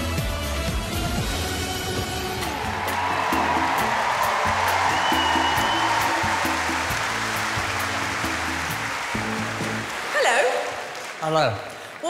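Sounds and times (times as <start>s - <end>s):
upbeat backing music: 0.0s - 11.6s
audience applause: 1.9s - 12.0s.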